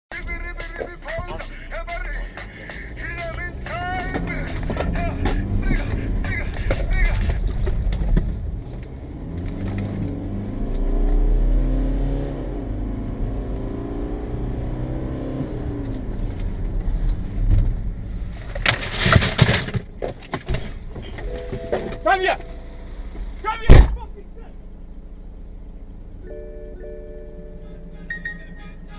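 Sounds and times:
car engine accelerating: 0.2 - 18.6, 20.8 - 28.9.

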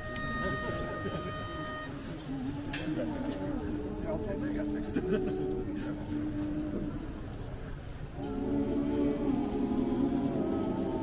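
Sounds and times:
pitch pipe note: 0.0 - 2.1
low crowd chatter: 0.0 - 11.0.

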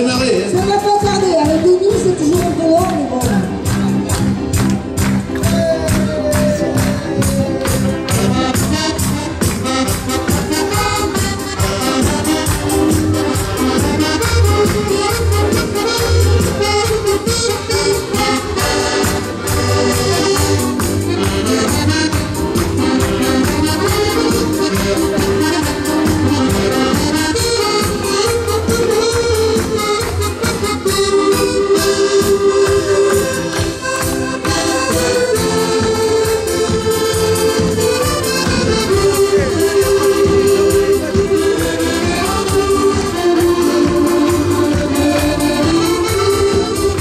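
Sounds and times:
accordions playing a tune: 0.0 - 47.0
beat and bass: 0.0 - 47.0.

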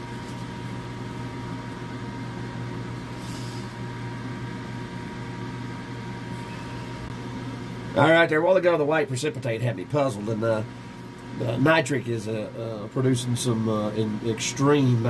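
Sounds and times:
magnetic stirrer motor hum: 0.0 - 15.0
thin steady whine: 0.0 - 15.0.

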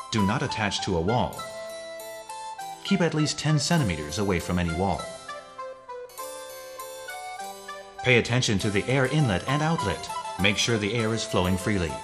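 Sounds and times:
harpsichord-like keyboard music: 0.0 - 12.0.

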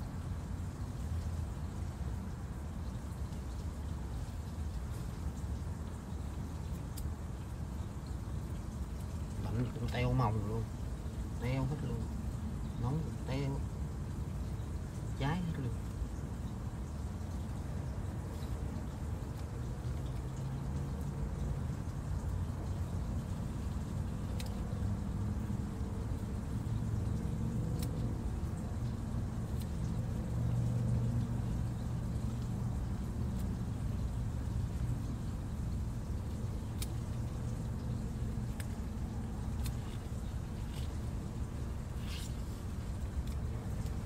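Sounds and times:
scissors cutting leafy greens: 24.2 - 24.8, 27.2 - 30.6, 36.2 - 44.0.

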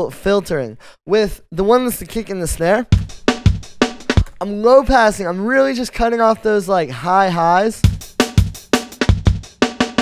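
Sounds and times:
breakbeat drum loop: 2.0 - 10.0.

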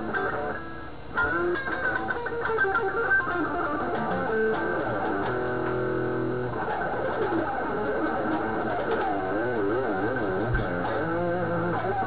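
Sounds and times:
electric guitar vibrato bends: 0.0 - 12.0.

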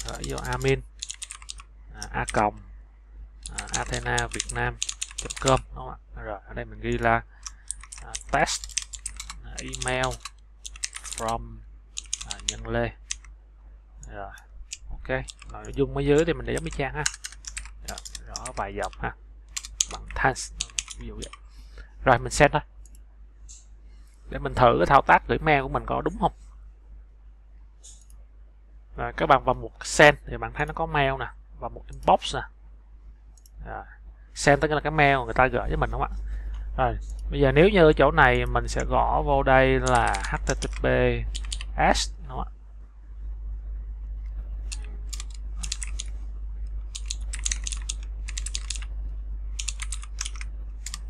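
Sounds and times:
computer mouse click: 0.0 - 2.4, 3.4 - 5.6, 7.4 - 11.3, 12.0 - 13.3, 14.7 - 21.4, 39.8 - 41.7, 44.7 - 46.1, 47.0 - 48.9, 49.6 - 51.0
faint low electrical hum: 0.0 - 51.0.

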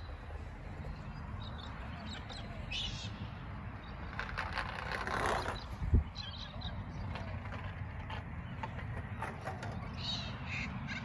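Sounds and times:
bird calling: 0.0 - 4.2.

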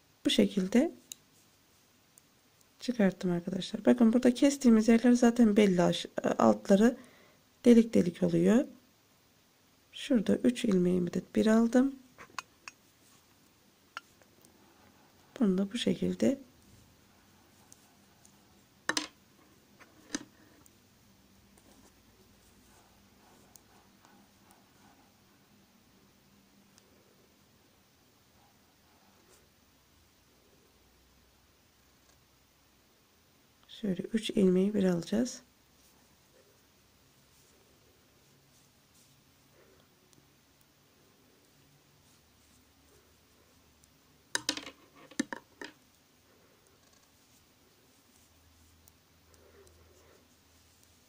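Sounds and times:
metal knitting needles clicking: 12.2 - 12.8.

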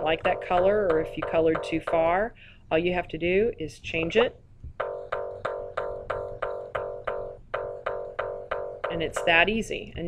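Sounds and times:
repeating plucked note: 0.0 - 2.2, 4.1 - 9.6.

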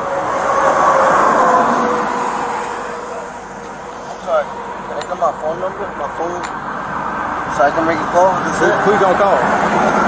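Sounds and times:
truck passing on highway: 0.0 - 10.0.

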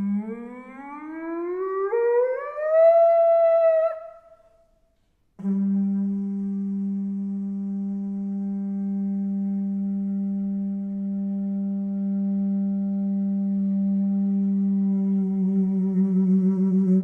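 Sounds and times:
conch shell horn low note: 5.4 - 17.0.

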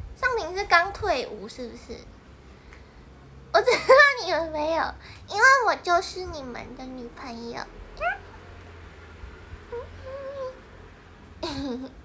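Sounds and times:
woman humming: 9.7 - 10.6.

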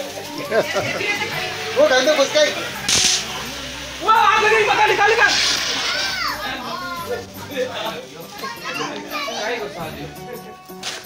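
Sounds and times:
children shouting and chattering: 0.0 - 11.0
sparkler fizzing hiss: 0.0 - 11.0.

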